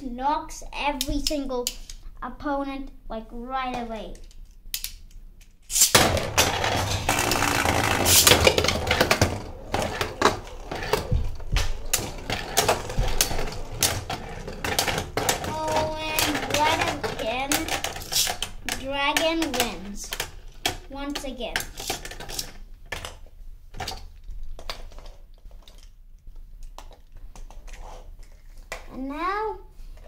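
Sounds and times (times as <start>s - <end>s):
spinning tops clashing: 5.7s - 18.5s.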